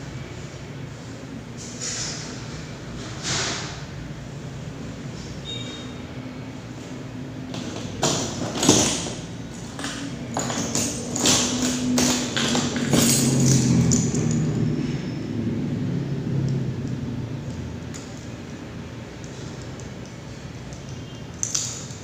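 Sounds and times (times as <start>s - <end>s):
small metal parts clicking: 8.0s - 14.6s, 16.5s - 22.0s.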